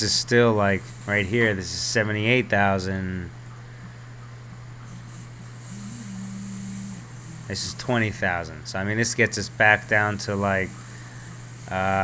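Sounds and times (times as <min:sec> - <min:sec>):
low background hum: 0:00.0 - 0:12.0.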